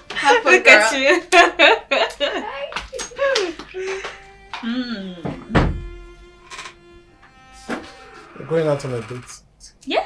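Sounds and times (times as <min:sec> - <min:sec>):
heavy thunk: 0:05.2 - 0:06.0.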